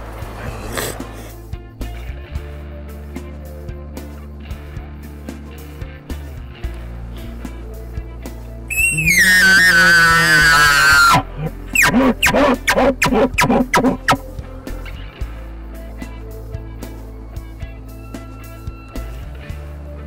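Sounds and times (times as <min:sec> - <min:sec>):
background music: 0:00.0 - 0:20.0
chuckle grunts: 0:00.4 - 0:01.4
elk bugle call whistle: 0:08.7 - 0:14.2.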